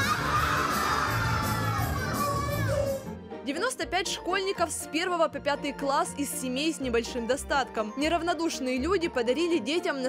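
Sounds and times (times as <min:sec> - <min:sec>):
children shouting and cheering: 0:00.0 - 0:03.1.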